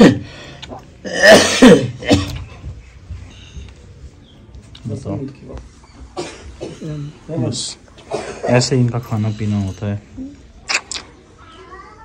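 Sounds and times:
man coughing and gagging: 0.0s - 0.2s, 1.0s - 2.4s, 6.2s - 7.0s, 8.1s - 8.8s.

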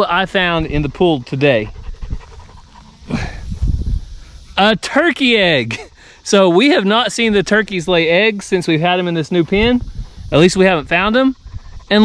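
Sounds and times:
dog panting: 0.0s - 3.4s, 6.0s - 10.7s, 11.4s - 12.0s.

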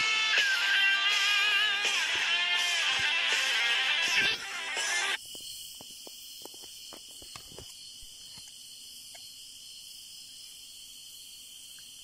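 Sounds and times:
crickets chirring: 4.3s - 12.0s.

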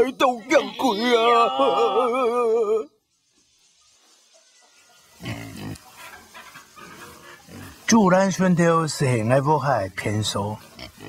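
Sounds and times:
man's voice: 0.0s - 2.9s
pigs grunting: 5.2s - 7.9s, 10.6s - 11.0s.

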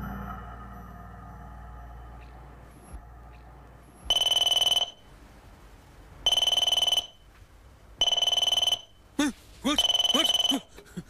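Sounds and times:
telephone ringing: 4.1s - 5.0s, 6.3s - 7.2s, 8.0s - 9.0s, 9.8s - 10.7s.

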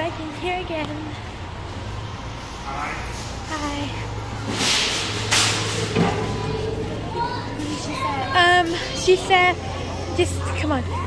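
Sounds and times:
busy store background: 0.0s - 11.0s.

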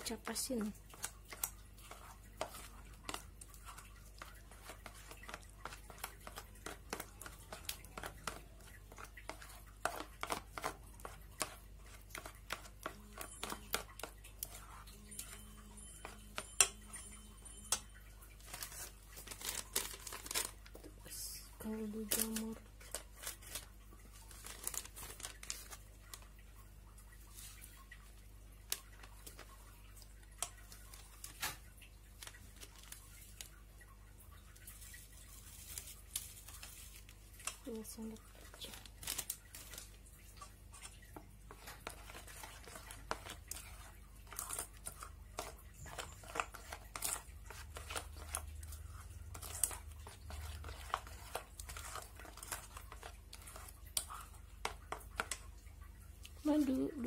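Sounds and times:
plastic sachet crinkling: 17.7s - 26.5s, 27.3s - 33.8s, 34.5s - 57.0s
scissors snipping plastic: 18.5s - 20.9s, 21.9s - 23.7s, 41.8s - 48.4s.

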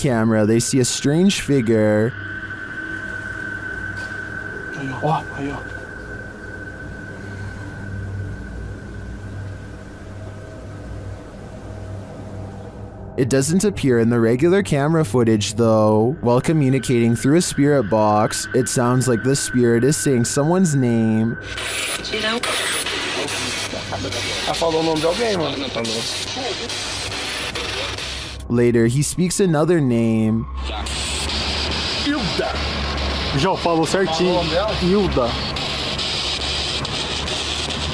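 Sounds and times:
radio static hiss: 0.0s - 12.2s, 13.2s - 37.9s
thin high tone: 0.0s - 36.9s
low droning hum: 0.0s - 37.9s.

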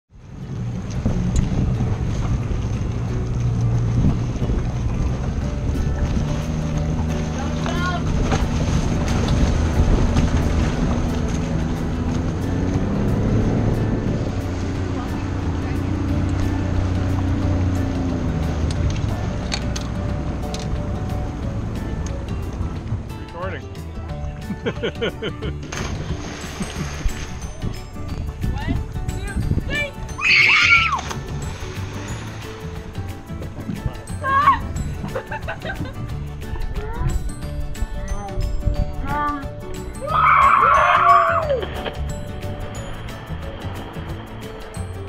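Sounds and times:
motorboat engine running: 0.1s - 30.2s, 30.8s - 40.0s, 41.0s - 45.0s
wind rushing over microphone: 0.2s - 6.4s, 7.0s - 19.4s, 25.9s - 30.2s, 31.2s - 39.2s.

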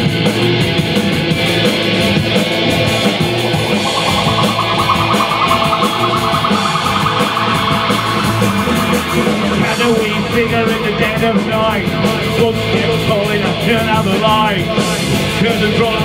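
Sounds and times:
high lead guitar line: 2.1s - 12.1s
live rock band playing: 2.3s - 10.9s.

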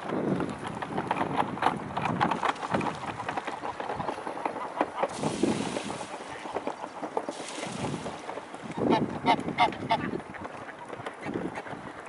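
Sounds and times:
wind on microphone: 0.0s - 12.0s
ducks quacking: 2.7s - 12.0s.

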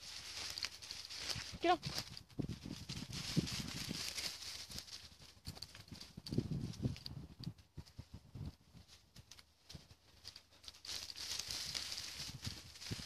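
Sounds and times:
dogs pushing through vegetation: 0.0s - 7.1s, 8.8s - 13.0s
footsteps crunching through undergrowth: 0.0s - 13.0s.

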